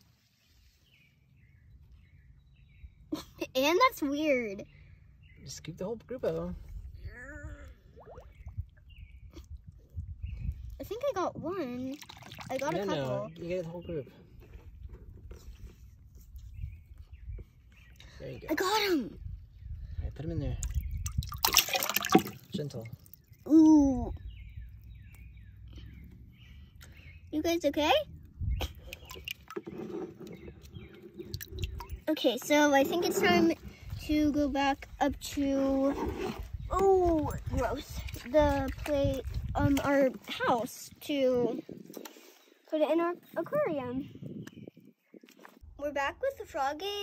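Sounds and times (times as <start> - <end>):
small water splashes: 7.7 - 9.9, 10.6 - 13.8, 20.6 - 23.8, 28.6 - 32.1, 36.1 - 40.6
wet squishing in mud: 11.8 - 13.2, 20.6 - 27.3, 28.6 - 32.1, 34.8 - 40.8
ladle scraping plastic bucket: 28.7 - 34.1, 35.6 - 38.9.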